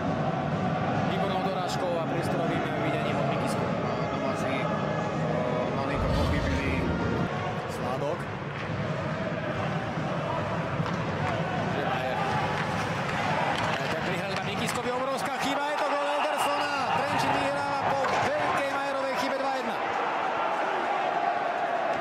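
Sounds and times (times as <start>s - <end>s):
low rumble: 5.9s - 7.9s.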